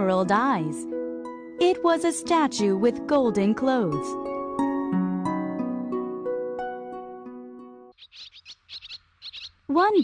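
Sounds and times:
gentle background music: 0.0 - 8.0
high bird chirps: 7.9 - 10.0.

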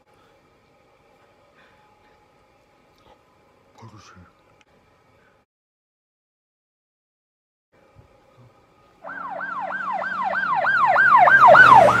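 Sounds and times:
low steady hum: 7.8 - 11.2
siren yelping: 9.0 - 12.0.

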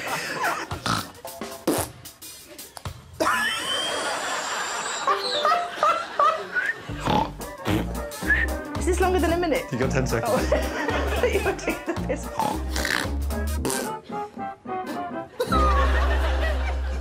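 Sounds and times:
bright background music: 0.0 - 3.7, 4.4 - 17.0
woman blowing raspberries: 0.8 - 2.0, 6.9 - 8.6, 12.3 - 15.7.

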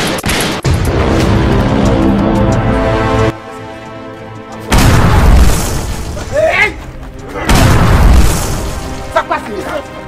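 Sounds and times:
booming gunshot: 4.7 - 6.1, 7.5 - 8.8.

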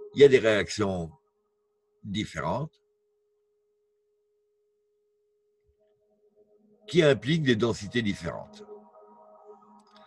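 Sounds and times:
faint high hum: 0.0 - 10.0.

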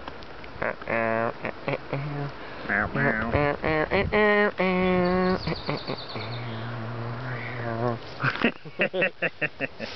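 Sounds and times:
man singing comic tune: 0.6 - 7.9.

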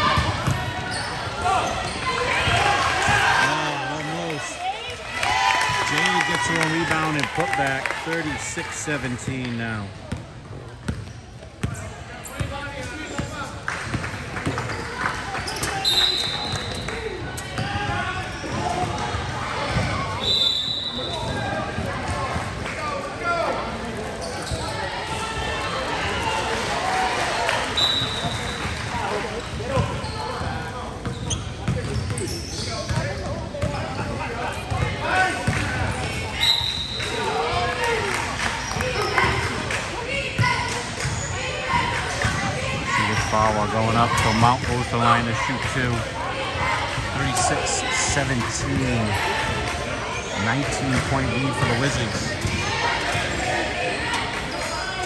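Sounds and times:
spectators chatting: 0.0 - 55.0
basketball bouncing on gym floor: 10.1 - 11.8.

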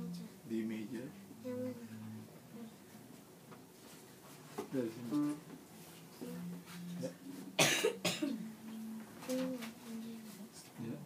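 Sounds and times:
person coughing: 7.6 - 8.4.

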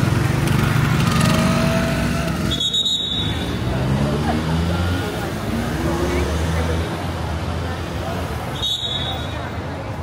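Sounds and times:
car engines in slow traffic: 0.0 - 8.5
passers-by talking: 0.0 - 10.0.

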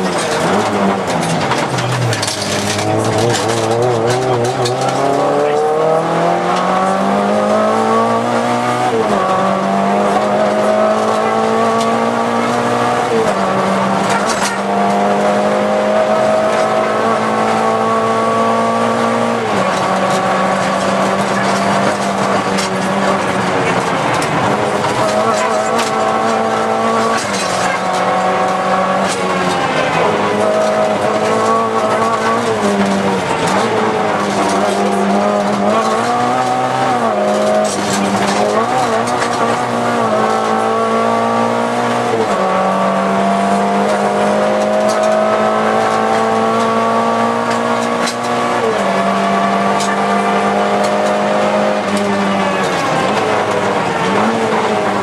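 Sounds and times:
car engine revving hard: 0.0 - 55.0.

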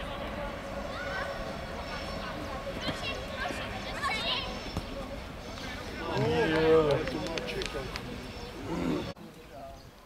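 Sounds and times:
voices shouting: 0.0 - 9.2.

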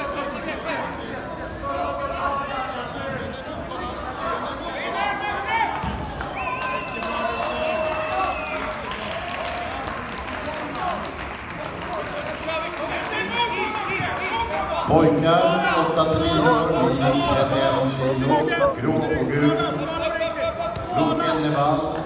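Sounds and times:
crowd talking and calling out: 0.0 - 8.3, 11.0 - 22.0.

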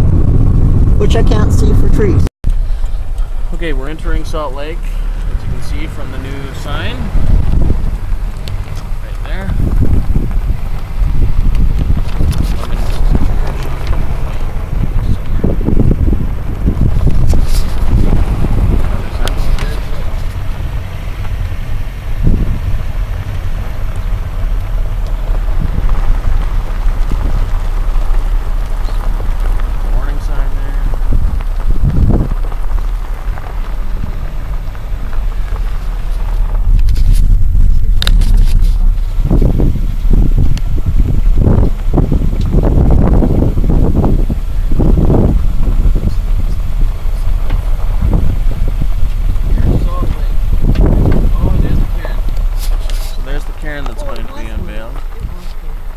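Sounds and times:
car road noise: 0.0 - 55.9
wind buffeting microphone: 0.0 - 55.9.

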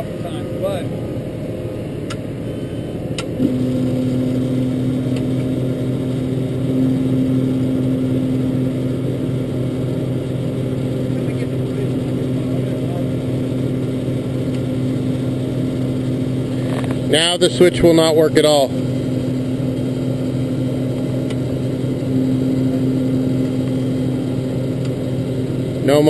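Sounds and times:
truck engine humming: 0.0 - 26.0.

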